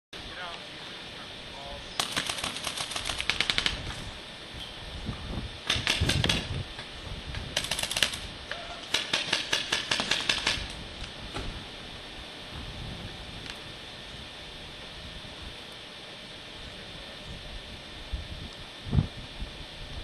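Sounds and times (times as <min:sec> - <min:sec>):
paintball markers firing: 0:02.0 - 0:03.8, 0:08.9 - 0:10.7.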